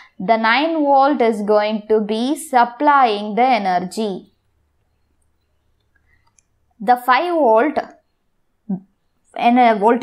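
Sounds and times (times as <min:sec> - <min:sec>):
faint clicks: 0:04.8 - 0:06.6
person speaking: 0:08.6 - 0:10.0.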